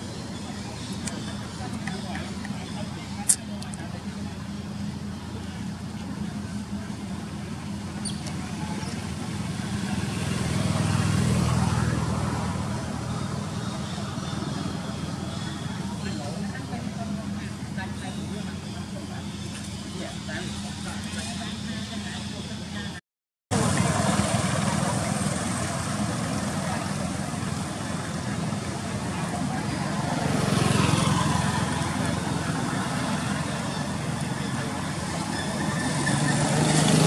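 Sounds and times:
motor vehicle passing by: 0:08.0 - 0:22.2, 0:23.5 - 0:37.0.

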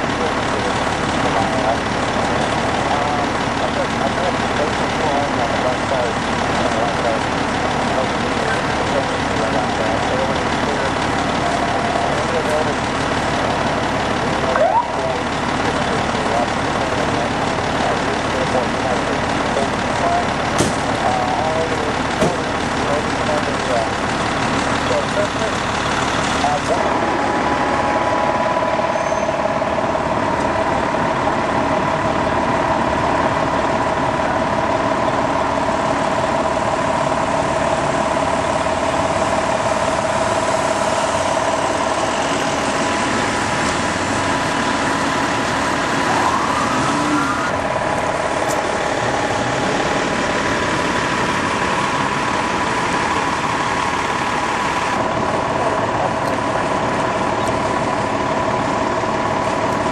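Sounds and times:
unintelligible voices: 0:00.0 - 0:24.0
ambulance engine idling: 0:00.0 - 0:59.9.

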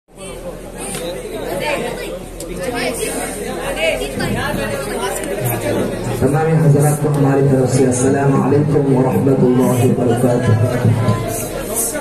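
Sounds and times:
steady low hum: 0:00.1 - 0:12.0
men talking in echoing space: 0:00.2 - 0:12.0.

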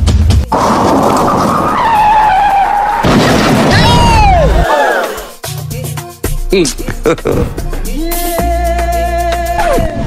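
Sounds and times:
car tyres screeching: 0:00.6 - 0:03.0.

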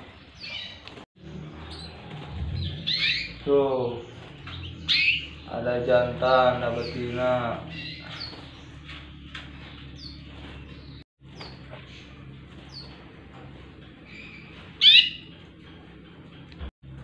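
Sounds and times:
canaries chirping: 0:00.0 - 0:16.7
canary sweeping call: 0:02.6 - 0:03.4, 0:14.4 - 0:15.2.

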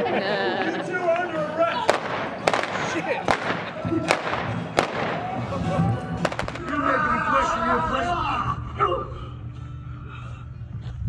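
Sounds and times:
voices: 0:00.0 - 0:09.3
music: 0:00.0 - 0:11.0
sharp cracks: 0:01.9 - 0:05.4, 0:06.2 - 0:06.8.

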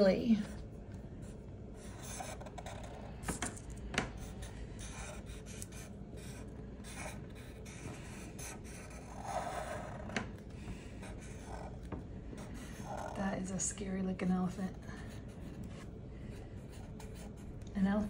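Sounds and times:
marker scratching on paper: 0:01.2 - 0:03.6, 0:04.2 - 0:10.2, 0:11.0 - 0:13.6, 0:14.7 - 0:17.5.

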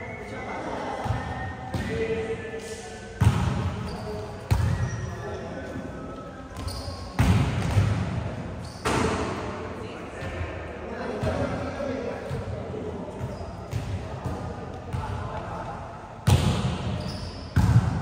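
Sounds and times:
volleyball smacks in gym: 0:16.2 - 0:16.9.

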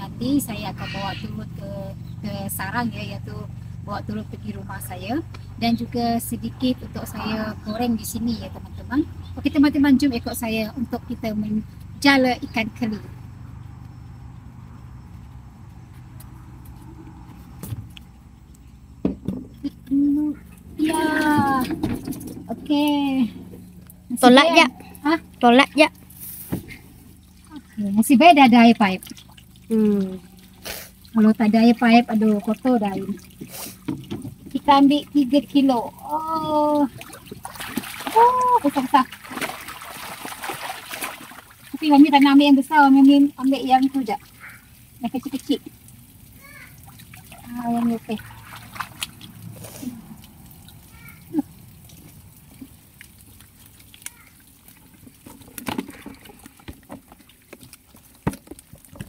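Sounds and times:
low steady background hum: 0:00.0 - 0:59.0
plastic drum knocks and clatters: 0:19.0 - 0:19.6, 0:21.3 - 0:22.7
water splashing off a net: 0:25.9 - 0:27.9, 0:28.5 - 0:34.7, 0:36.0 - 0:59.0.

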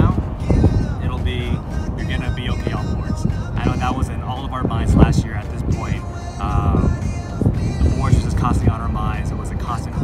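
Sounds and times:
background music: 0:00.0 - 0:10.0
low wind rumble on microphone: 0:00.0 - 0:10.0
man speaking: 0:01.0 - 0:06.9.

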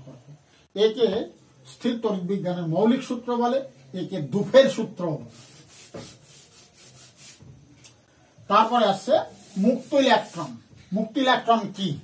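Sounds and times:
chalk rubbing on a blackboard: 0:05.2 - 0:07.6, 0:08.5 - 0:10.7.

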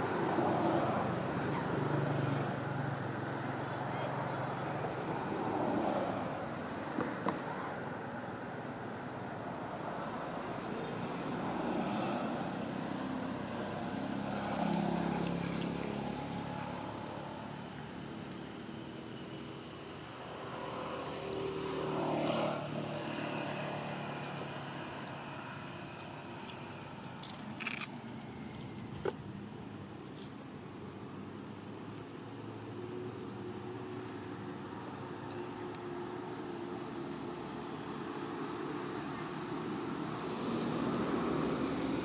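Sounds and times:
motor vehicles passing: 0:00.0 - 0:42.0.

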